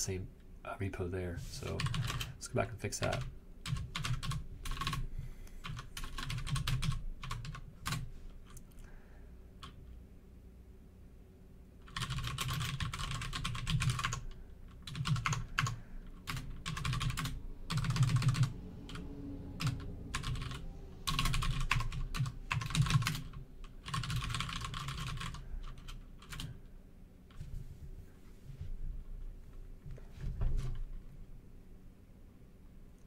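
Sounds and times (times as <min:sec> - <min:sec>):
computer keyboard typing: 0:01.7 - 0:02.4, 0:03.0 - 0:08.6, 0:11.8 - 0:19.0, 0:19.6 - 0:26.6.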